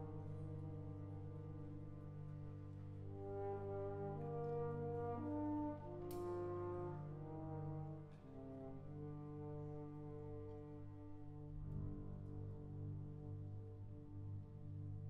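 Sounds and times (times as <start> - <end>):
french horn: 0.0 - 15.0
wind band playing slowly: 0.0 - 15.0.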